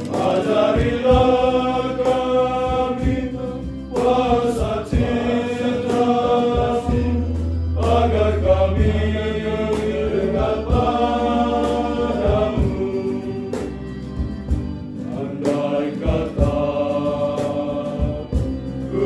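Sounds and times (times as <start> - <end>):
acoustic guitar: 0.0 - 19.0
male choir singing a hymn: 0.0 - 19.0.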